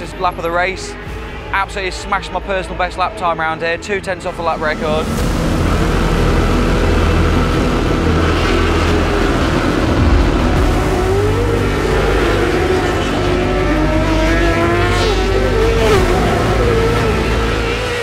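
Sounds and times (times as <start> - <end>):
racing motorcycle engines: 0.0 - 18.0.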